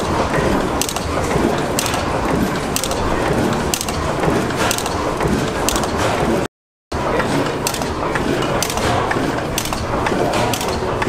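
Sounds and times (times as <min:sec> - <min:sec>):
gas engine clattering: 0:00.0 - 0:11.0
sharp engine clicks: 0:00.3 - 0:06.1, 0:07.3 - 0:11.0.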